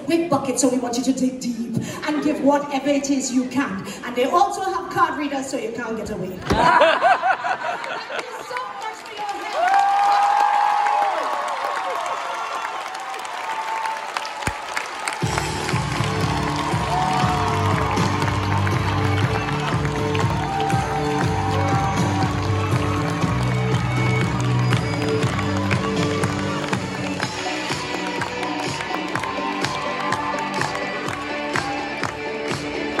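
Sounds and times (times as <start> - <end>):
audience applauding and cheering: 7.1 - 33.0
loud music with bass line: 15.2 - 33.0.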